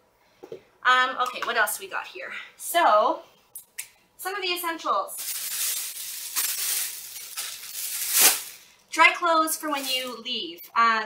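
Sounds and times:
plastic bag crinkling: 5.2 - 8.8, 9.6 - 10.2.

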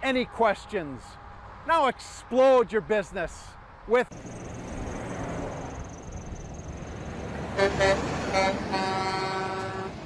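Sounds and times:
highway traffic: 0.0 - 10.0
truck horn: 7.5 - 10.0.

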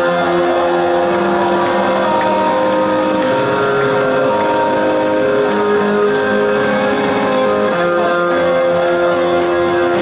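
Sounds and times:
electric guitars ringing chords: 0.0 - 10.0.

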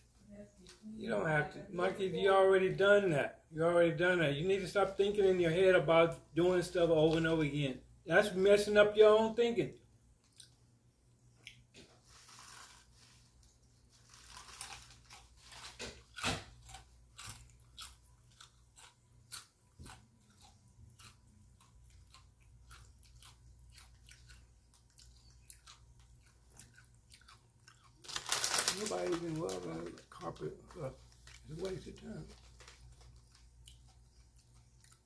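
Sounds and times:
person crunching corn chips: 12.0 - 35.0.

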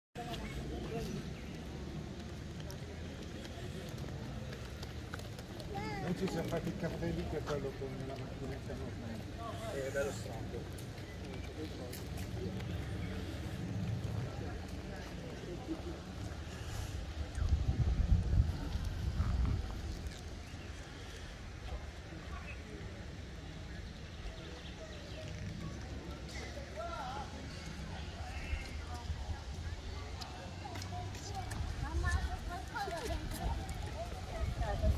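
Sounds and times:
distant voices: 0.2 - 34.9
footsteps on cobblestones: 0.2 - 34.9
steady low rumble: 12.2 - 22.3.

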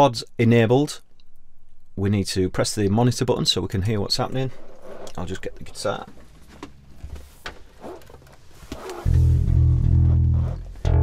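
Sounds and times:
sustained bass guitar note: 9.0 - 11.0.

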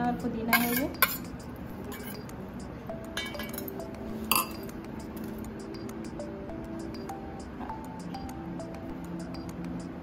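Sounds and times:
spoon clinking against glass bowl: 0.5 - 2.3, 3.1 - 5.3.

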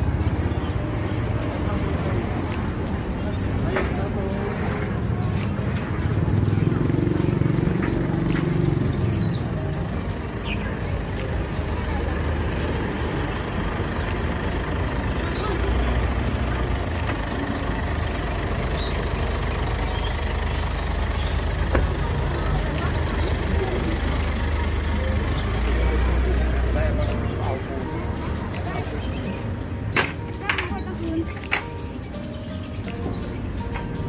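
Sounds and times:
indistinct voices: 0.0 - 34.0
low rumble of passing vehicles: 0.0 - 34.0.

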